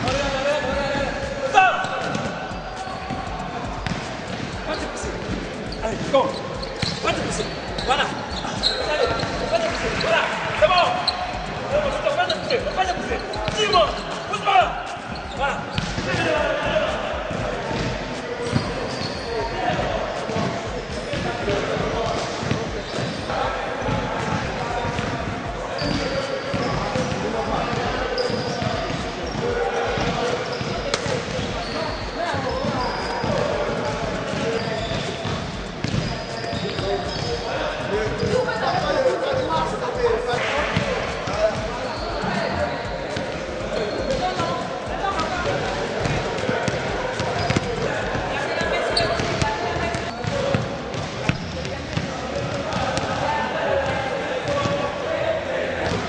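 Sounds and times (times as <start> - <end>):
voices calling out: 1.4 - 56.0
basketballs bouncing on wooden floor: 1.8 - 10.0, 15.2 - 16.3, 19.7 - 31.7, 32.4 - 37.4, 45.0 - 53.1.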